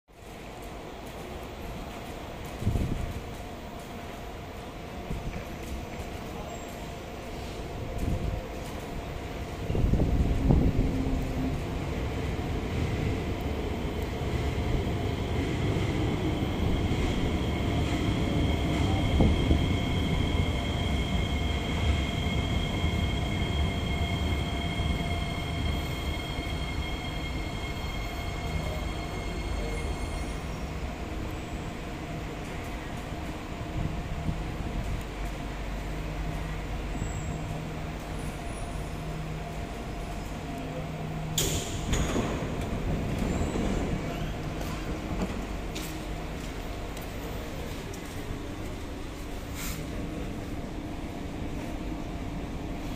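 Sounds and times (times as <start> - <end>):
low hum of standing train: 0.1 - 52.9
train wheel rumble: 0.1 - 52.9
rush of doors opening: 41.2 - 45.5.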